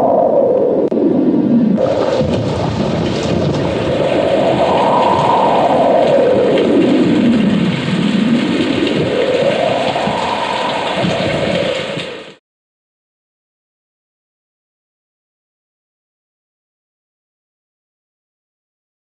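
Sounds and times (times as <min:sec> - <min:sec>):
howling wind: 0:00.0 - 0:12.4
thunder: 0:01.0 - 0:12.4
heavy rain: 0:01.8 - 0:12.4.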